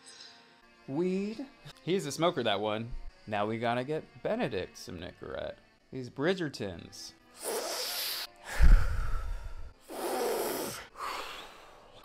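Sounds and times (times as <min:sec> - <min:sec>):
man breathing noisily: 0:07.4 - 0:12.0.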